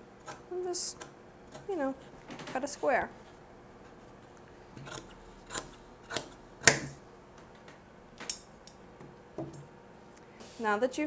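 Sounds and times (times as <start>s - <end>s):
scissors snipping fabric: 4.8s - 6.8s.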